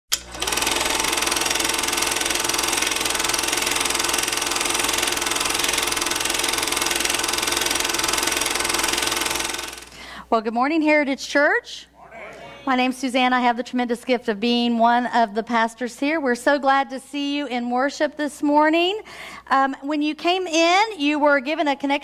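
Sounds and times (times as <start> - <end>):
film projector clatter: 0.1 - 10.0.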